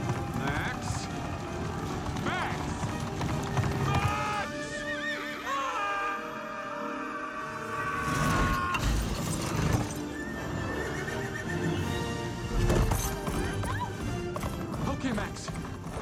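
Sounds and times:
hooves clattering: 0:00.0 - 0:05.2, 0:08.8 - 0:16.0
horse neighing: 0:00.0 - 0:06.0, 0:07.4 - 0:12.2
dramatic orchestral music: 0:00.0 - 0:16.0.

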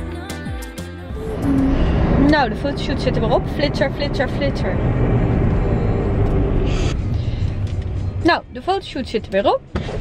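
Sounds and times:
car cabin road and engine rumble: 0:01.1 - 0:10.0.

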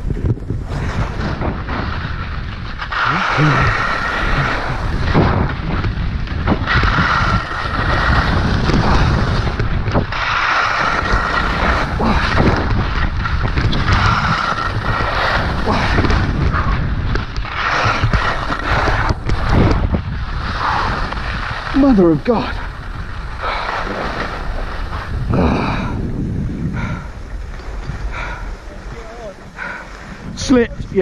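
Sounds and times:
skis scraping on hard snow: 0:00.0 - 0:31.0
wind buffeting microphone: 0:00.0 - 0:31.0.

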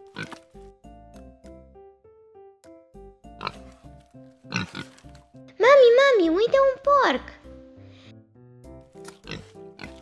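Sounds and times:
keyboard music: 0:00.0 - 0:10.0
pig grunting: 0:03.4 - 0:05.1.

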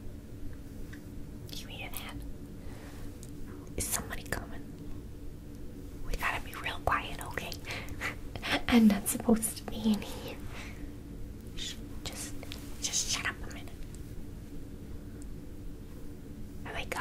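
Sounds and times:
faint steady hum: 0:00.0 - 0:17.0
woman whispering: 0:01.5 - 0:02.2, 0:03.5 - 0:04.7, 0:06.1 - 0:10.5, 0:11.6 - 0:13.8, 0:16.6 - 0:17.0.

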